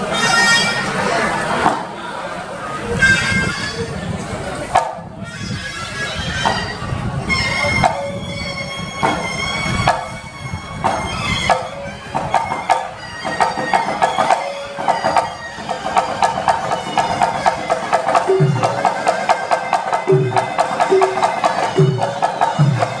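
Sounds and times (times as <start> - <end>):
oboe wavering melody: 0.0 - 1.3, 4.8 - 23.0
barrel drums beating: 4.7 - 5.0, 7.6 - 23.0
deep low drum stroke: 10.8 - 23.0.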